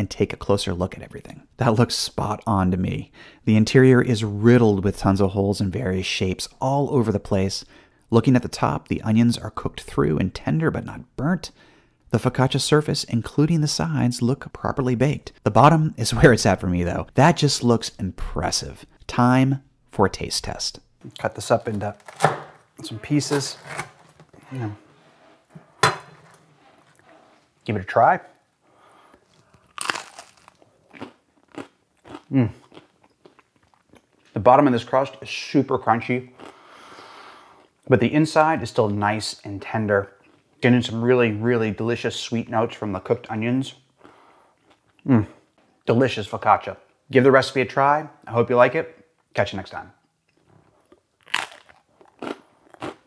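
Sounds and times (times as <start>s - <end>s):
crunchy bread chewing: 29.2s - 34.3s, 50.3s - 53.0s.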